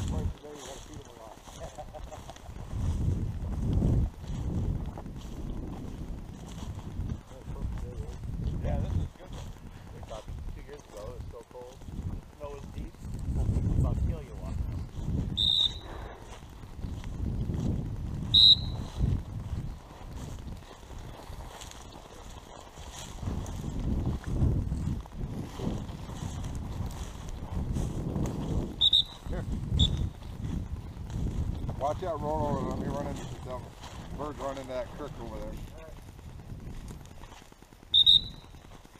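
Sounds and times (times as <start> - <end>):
dry grass brushing camera: 0.0 - 38.9
wind rumble: 0.0 - 38.9
short high chirps: 15.4 - 15.9, 18.4 - 18.9, 28.8 - 30.1, 38.0 - 38.5.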